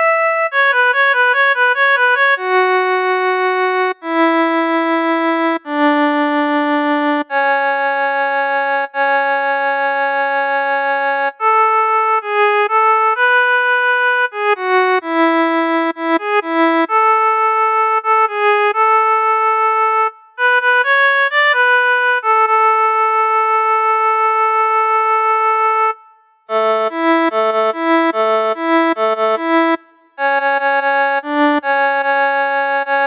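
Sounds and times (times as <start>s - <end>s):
melodica holding a long note: 0.0s - 33.0s.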